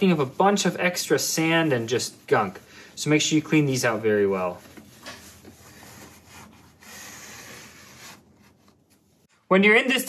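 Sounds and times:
paper towel rubbing metal rail: 0:00.0 - 0:09.0.

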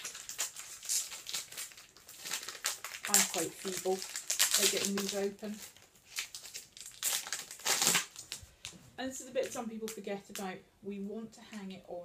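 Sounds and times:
plastic wrap crinkling: 0:00.0 - 0:10.5.

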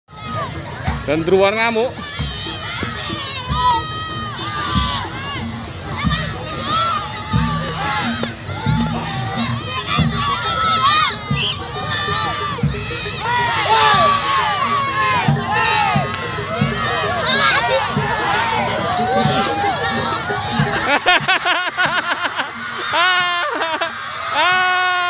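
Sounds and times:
children cheering: 0:00.1 - 0:25.0
children shouting and shrieking: 0:00.1 - 0:25.0.

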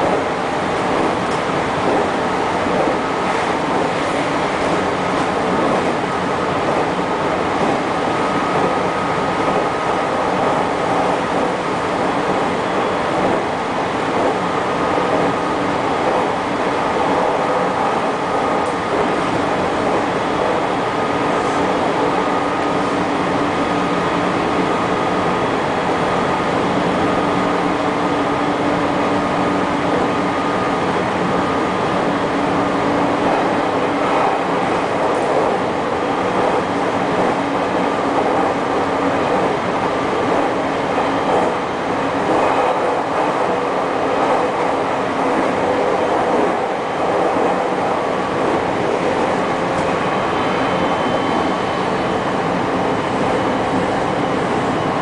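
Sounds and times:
train rumbling on rails: 0:00.0 - 0:55.0.

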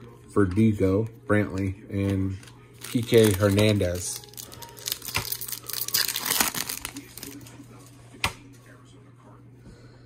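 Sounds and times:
foil wrapper tearing and crinkling: 0:02.0 - 0:07.5.

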